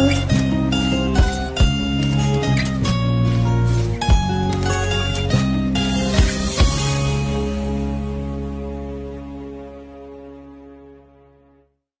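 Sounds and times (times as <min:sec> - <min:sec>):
instrumental backing track chord: 0:00.0 - 0:11.8.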